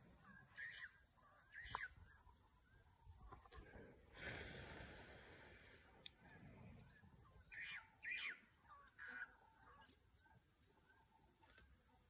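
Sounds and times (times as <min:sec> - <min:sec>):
harsh bird calls: 0:00.1 - 0:03.4, 0:06.9 - 0:10.4.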